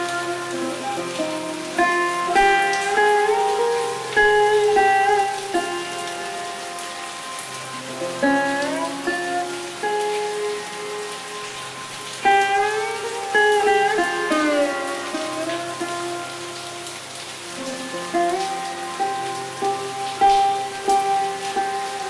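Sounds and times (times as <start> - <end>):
rain hiss: 0.0 - 22.0
sitar playing slow melody: 0.0 - 22.0.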